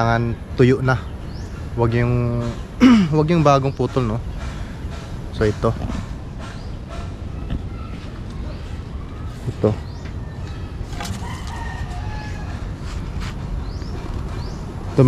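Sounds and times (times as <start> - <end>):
rooster crowing: 10.9 - 12.9.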